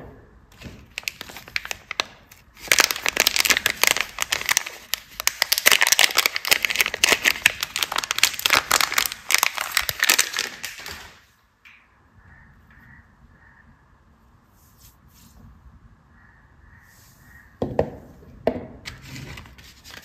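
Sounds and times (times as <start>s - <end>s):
plastic wrapper crinkling: 0.6s - 11.3s, 18.9s - 20.0s.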